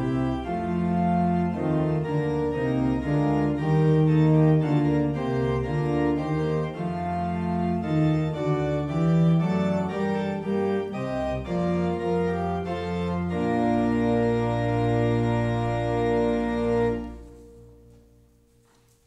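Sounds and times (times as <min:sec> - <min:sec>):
organ playing a hymn: 0:00.0 - 0:19.0.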